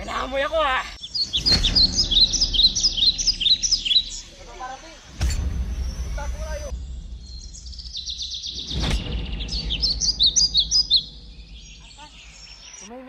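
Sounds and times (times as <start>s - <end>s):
birds chirping: 0.0s - 13.0s
low rumble: 0.5s - 12.8s.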